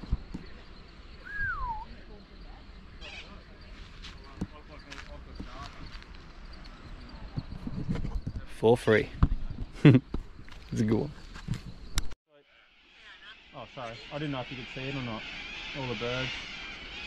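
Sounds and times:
faint outdoor background: 0.0s - 17.0s
bird whistling: 1.2s - 2.0s
short bird calls: 3.0s - 3.5s, 12.5s - 17.0s.

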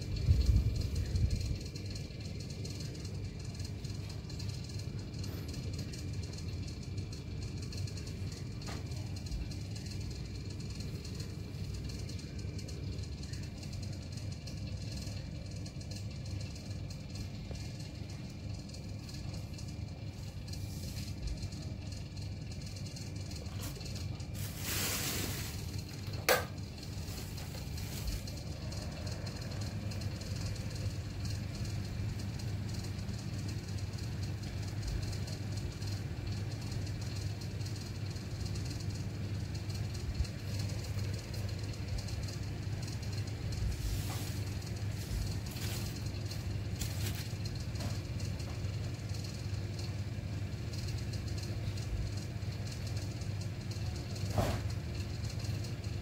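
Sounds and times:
low room hum and rumble: 0.0s - 56.0s
handling rustle: 43.8s - 47.5s.

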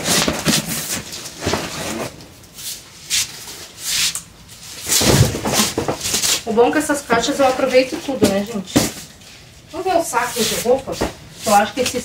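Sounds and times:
cardboard boxes being handled: 0.0s - 2.2s.

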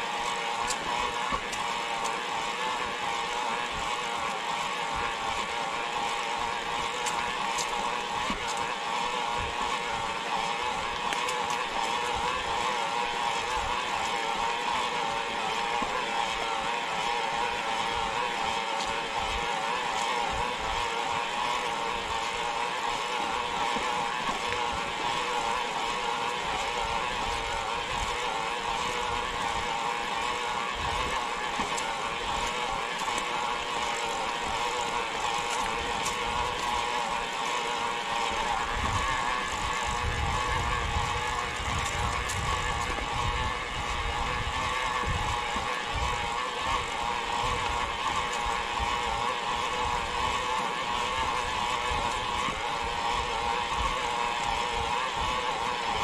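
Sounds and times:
electric motor whine: 0.0s - 56.0s
wind rumble on microphone: 39.8s - 46.1s.

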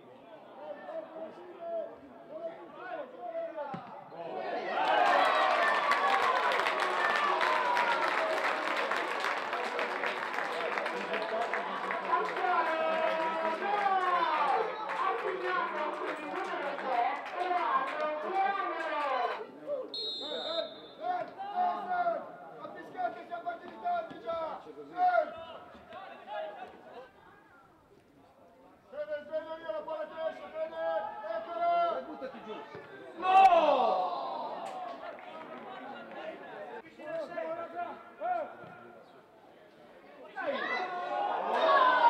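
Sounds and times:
loud shout: 2.8s - 9.1s, 11.6s - 19.5s, 33.2s - 35.2s, 40.3s - 42.0s.

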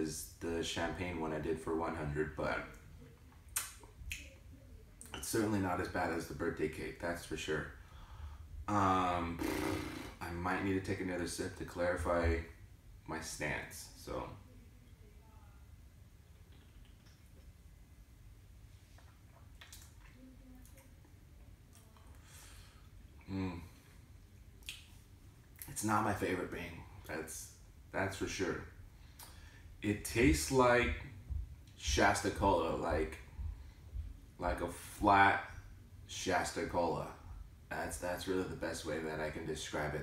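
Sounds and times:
lip smacks: 3.4s - 4.4s, 16.2s - 17.6s, 18.9s - 22.2s, 24.6s - 25.7s
man humming hmm: 8.7s - 10.2s, 23.2s - 23.8s.

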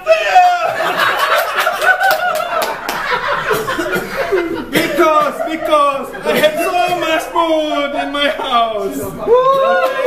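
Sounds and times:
people laughing: 0.0s - 10.0s.

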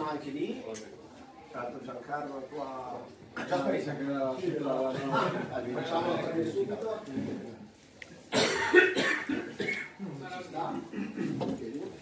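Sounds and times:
person coughing: 8.3s - 10.0s.

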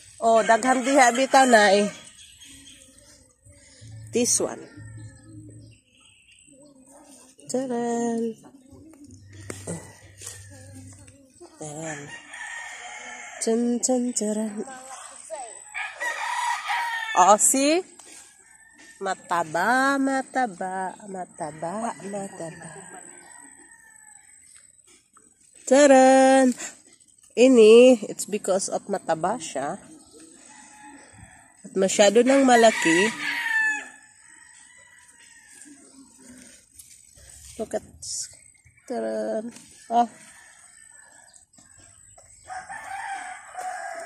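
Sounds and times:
rooster crowing: 11.8s - 13.5s, 15.7s - 17.3s, 21.7s - 24.4s, 30.4s - 36.4s, 39.8s - 41.3s, 42.4s - 44.0s.

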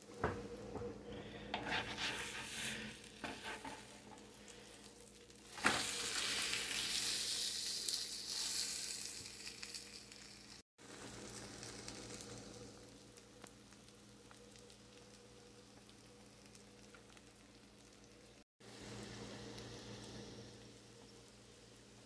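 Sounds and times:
spatula scraping pan: 1.2s - 4.3s
loud sizzling: 1.6s - 13.5s.

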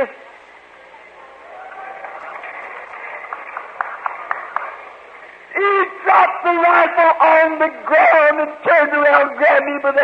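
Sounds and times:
murmur of congregation voices: 0.0s - 10.0s.

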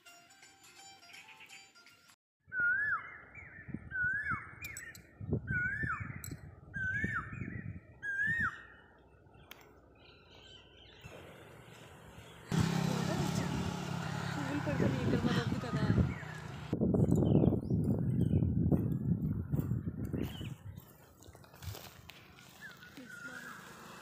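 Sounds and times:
bird whistling call: 2.5s - 6.2s, 6.8s - 8.8s.

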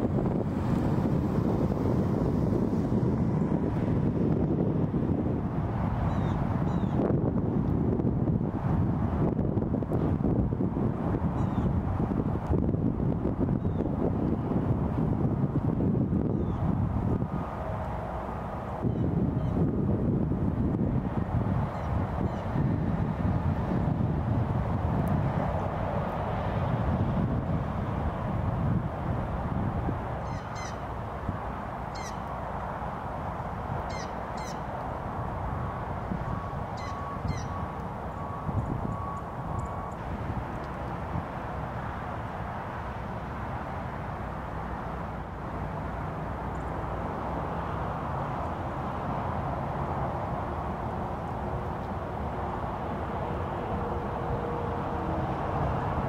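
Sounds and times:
faint high animal calls: 30.2s - 30.8s, 31.9s - 32.2s, 33.9s - 34.6s, 36.8s - 37.6s.

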